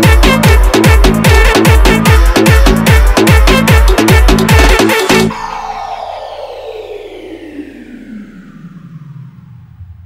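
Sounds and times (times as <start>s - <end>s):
synthesized downward sweep: 0.0s - 10.0s.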